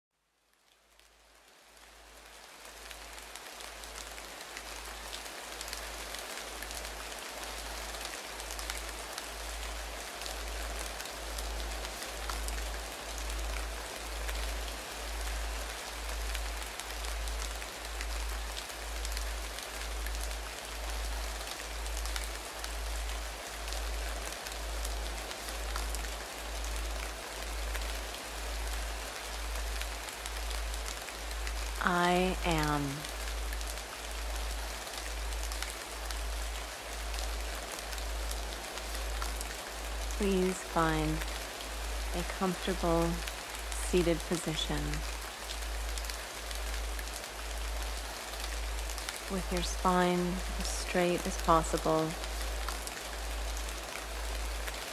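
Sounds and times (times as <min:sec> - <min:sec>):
rain-like hiss: 0:00.2 - 0:54.9.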